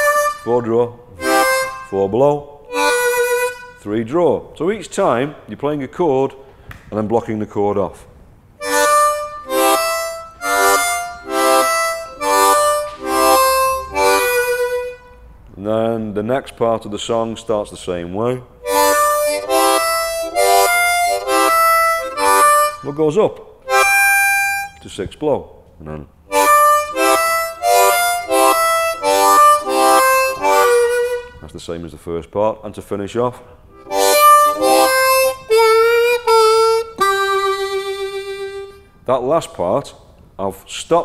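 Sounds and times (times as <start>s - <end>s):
harmonica chords: 0.0s - 5.3s, 8.6s - 15.4s, 18.5s - 25.2s, 25.9s - 31.8s, 33.5s - 39.3s.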